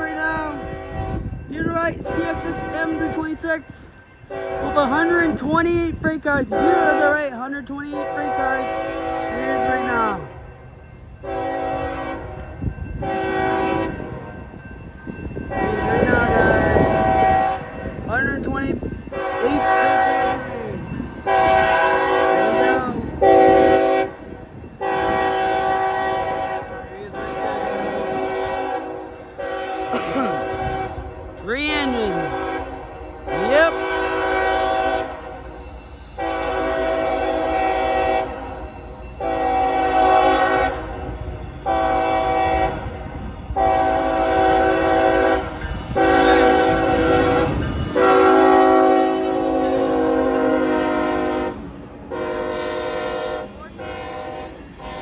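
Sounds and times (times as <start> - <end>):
locomotive air horn blasts: 0.0 - 1.4, 2.2 - 3.2, 4.3 - 5.0, 6.5 - 7.2, 7.9 - 10.1, 11.2 - 14.2, 15.5 - 17.8, 19.1 - 20.6, 21.2 - 24.2, 24.8 - 31.2, 32.1 - 35.4, 36.2 - 38.5, 39.2 - 55.0.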